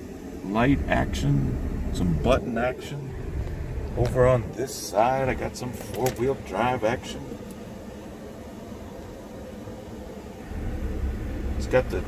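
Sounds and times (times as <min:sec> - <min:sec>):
engine idling: 0:00.0 - 0:12.0
fan blowing hiss: 0:00.0 - 0:12.0
low rumble: 0:00.0 - 0:12.0.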